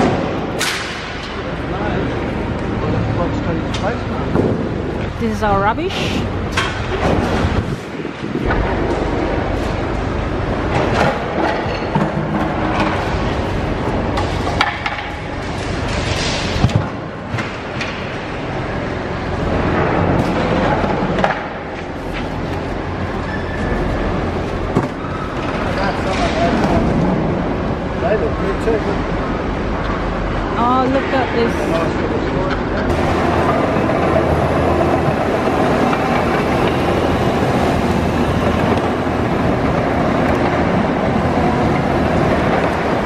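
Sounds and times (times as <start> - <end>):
machinery running: 0.0 - 43.0
indistinct voices: 5.1 - 6.5.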